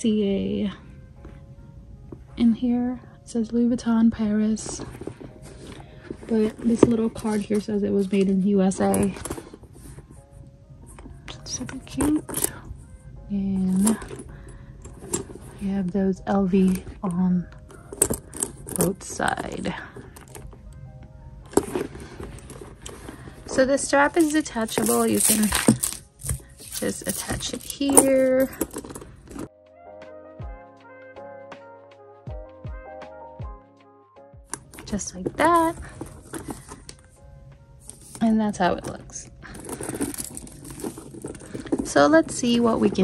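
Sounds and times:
leather handbag handled: 4.2 - 12.9, 13.5 - 29.5, 34.5 - 43.0.

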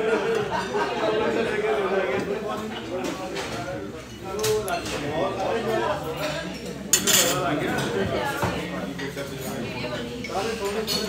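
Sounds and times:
people chatting: 0.0 - 11.0
plates and cutlery clinking: 6.2 - 11.0.

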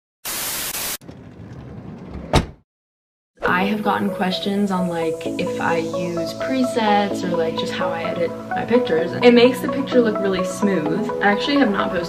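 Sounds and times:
burst of white-noise static: 0.2 - 1.0.

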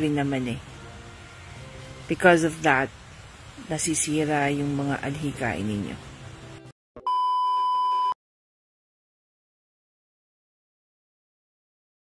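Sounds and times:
faint background noise: 0.0 - 6.6
electronic beep tone: 7.0 - 8.2.

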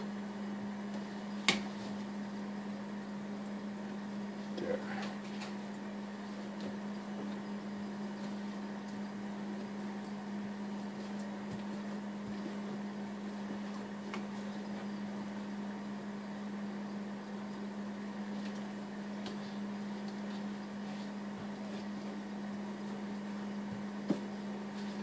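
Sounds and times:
low hum with hiss: 0.0 - 25.0.

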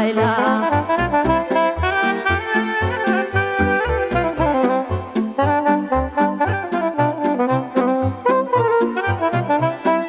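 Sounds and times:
folk dance music with wind lead: 0.2 - 10.0.

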